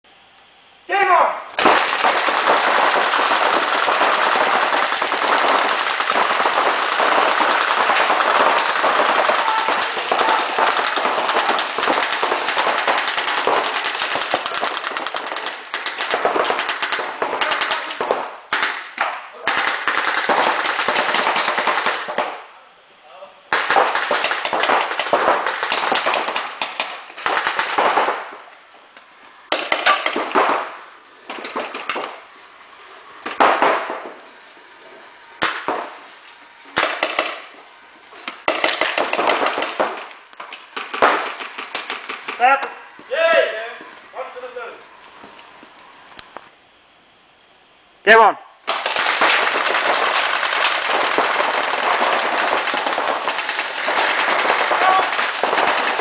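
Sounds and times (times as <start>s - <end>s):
paintball markers firing: 1.6s - 22.4s, 23.5s - 28.2s, 29.5s - 32.2s, 36.8s - 37.6s, 38.2s - 42.5s.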